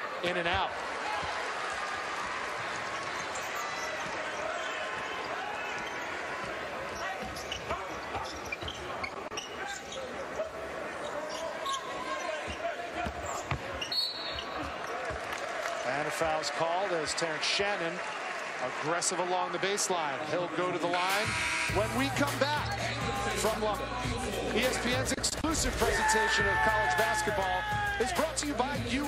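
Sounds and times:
murmur of arena crowd: 0.0 - 29.0
shrill referee whistle: 13.9 - 14.5, 21.2 - 22.0.

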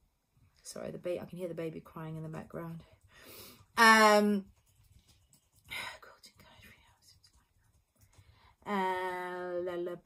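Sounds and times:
woman whispering: 5.6 - 7.7.

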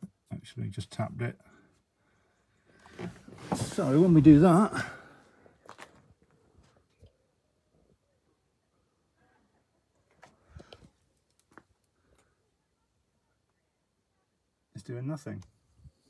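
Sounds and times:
faint clicks and rustles: 5.3 - 7.3, 9.8 - 12.5.

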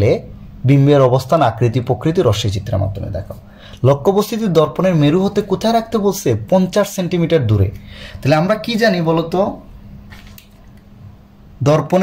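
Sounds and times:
man speaking: 0.0 - 9.7, 11.6 - 12.0.

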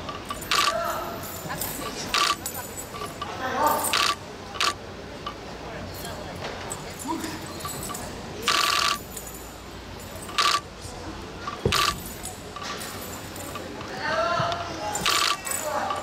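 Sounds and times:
short metallic jangles: 0.1 - 4.2, 5.9 - 10.7, 11.4 - 13.9, 14.9 - 16.0.

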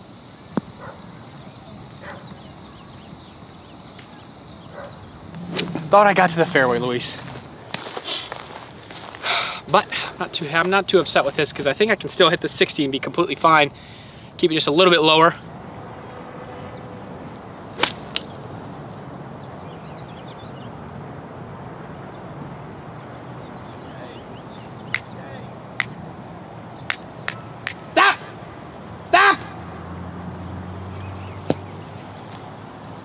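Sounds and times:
golf ball struck: 5.4 - 6.0, 17.8 - 18.5, 25.8 - 26.0.

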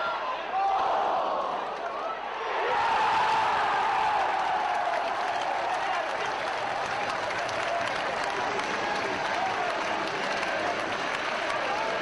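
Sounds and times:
crowd cheering and shouting: 0.0 - 12.0
crowd clapping: 3.3 - 12.0.

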